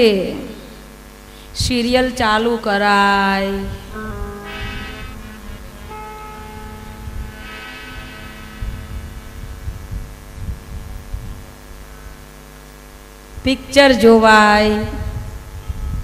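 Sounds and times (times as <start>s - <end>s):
sustained musical drone chord: 3.4s - 12.3s.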